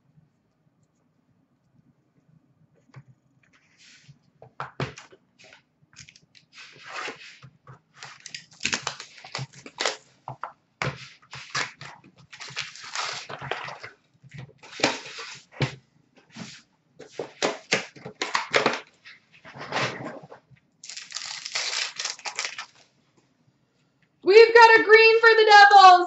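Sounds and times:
cardboard cards rustling: 4.7s - 13.9s, 16.4s - 22.8s
wrappers tearing and crinkling: 8.0s - 10.1s, 11.3s - 14.0s, 20.8s - 22.9s.

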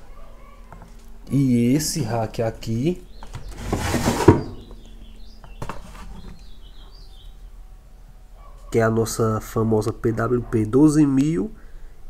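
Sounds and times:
hand rubbing wooden case: 3.2s - 4.7s
faint bird chirps: 4.4s - 7.8s.

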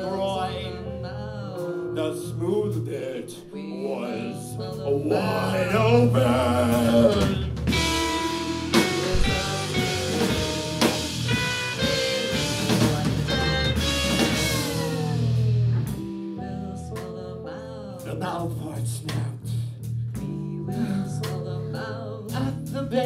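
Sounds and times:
bass guitar: 0.0s - 3.2s, 4.3s - 23.0s
drum kit: 6.2s - 17.2s, 18.0s - 21.6s
electric guitar: 6.8s - 16.6s.

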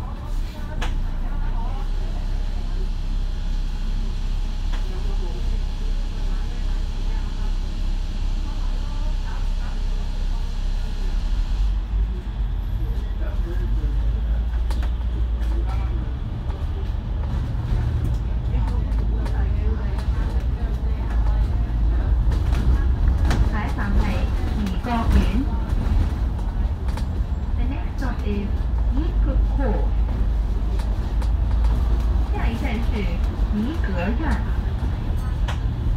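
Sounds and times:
bus diesel engine rumble: 0.0s - 35.9s
faint voices: 0.0s - 35.9s
road noise: 0.0s - 35.9s.

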